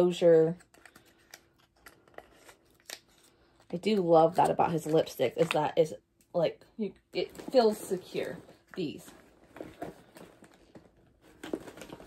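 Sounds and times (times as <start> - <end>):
handling plastic tube and packaging: 0.0 - 5.8, 7.2 - 12.0.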